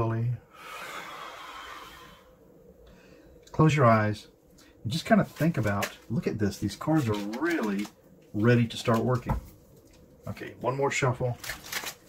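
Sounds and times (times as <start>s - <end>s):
man exhaling slowly: 0.4s - 3.4s.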